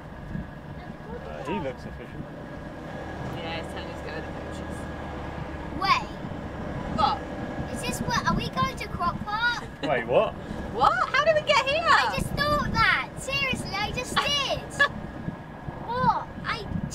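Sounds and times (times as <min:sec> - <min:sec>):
lorry engine drone: 0:00.0 - 0:16.9
road rumble: 0:00.0 - 0:16.9.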